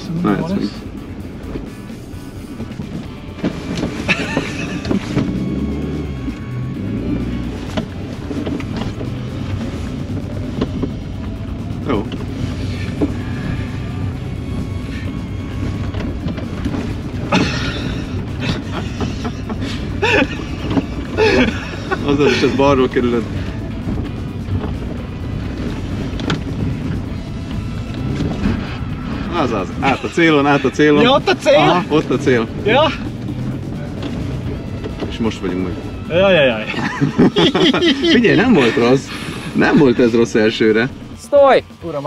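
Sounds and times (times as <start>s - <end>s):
background music: 0.0s - 42.0s
car engine running: 0.0s - 42.0s.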